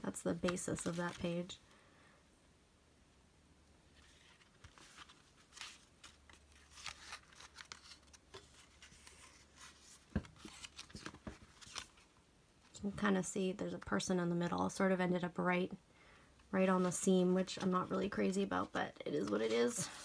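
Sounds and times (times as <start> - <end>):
notebook pages rustling: 0.2 - 1.6, 4.0 - 12.1, 16.6 - 20.0.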